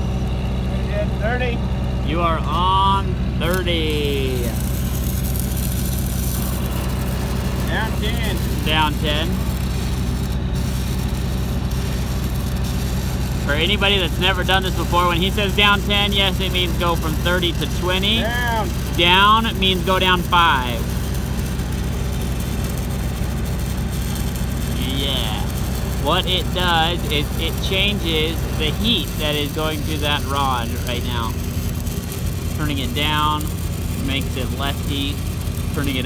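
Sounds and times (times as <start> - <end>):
welding machine engine droning: 0.0 - 36.0.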